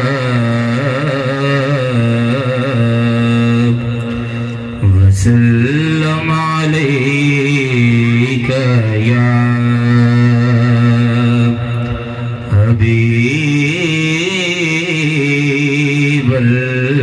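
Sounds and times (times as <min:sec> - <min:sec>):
man singing into a microphone: 0:00.0 - 0:17.0
steady low drone: 0:00.0 - 0:17.0.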